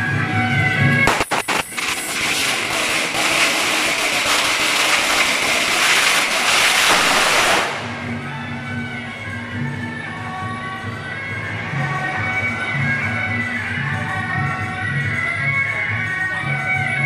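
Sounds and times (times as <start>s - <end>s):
firecrackers crackling: 1.0s - 8.9s.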